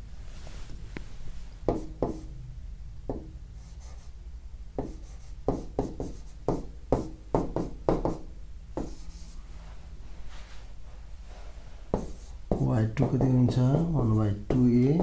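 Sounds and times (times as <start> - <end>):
pen strokes on a board: 1.7 - 2.3, 4.8 - 8.2, 8.8 - 9.4, 11.9 - 13.6.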